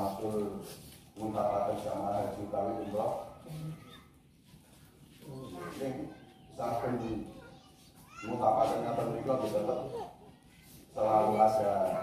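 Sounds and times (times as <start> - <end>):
man reciting: 0.0 - 3.4, 10.9 - 12.0.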